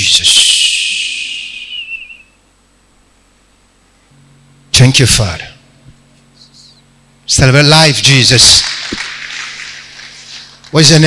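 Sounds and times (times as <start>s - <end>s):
high whistling hiss: 0.0s - 2.4s.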